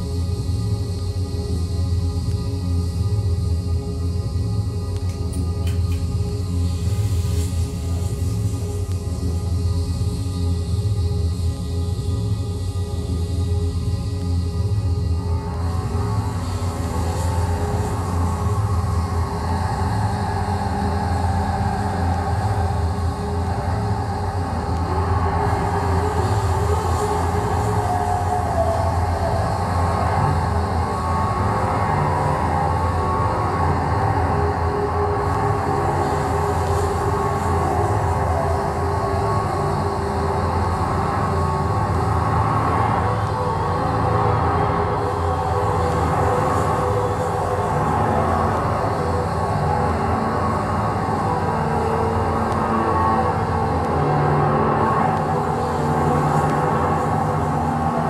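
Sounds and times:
experimental bass and electronics drone: 0:00.0 - 0:58.0.

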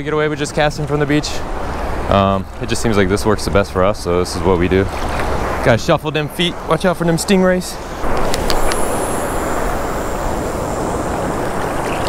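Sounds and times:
surf washing: 0:00.0 - 0:12.0
wind on microphone: 0:07.8 - 0:12.0.

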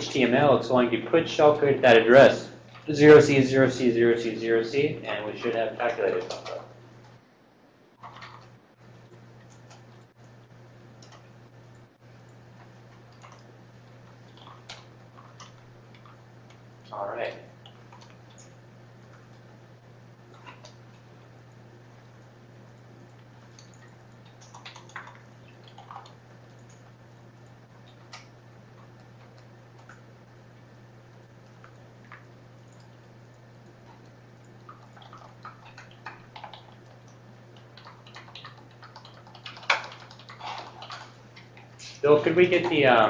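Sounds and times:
low room hum: 0:00.0 - 0:43.0
keyboard and mouse clicks: 0:08.0 - 0:08.6, 0:23.5 - 0:26.9, 0:34.7 - 0:37.0, 0:37.6 - 0:41.7.

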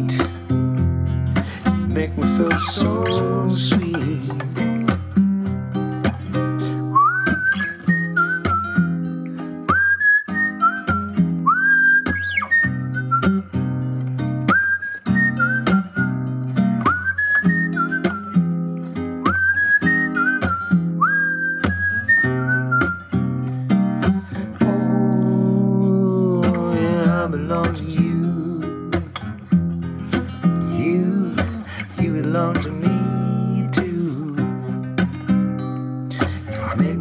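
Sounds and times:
acoustic guitar chords: 0:00.0 - 0:37.0
person whistling a melody: 0:01.6 - 0:04.4, 0:06.4 - 0:13.6, 0:14.4 - 0:18.6, 0:19.2 - 0:23.2, 0:30.0 - 0:34.6.

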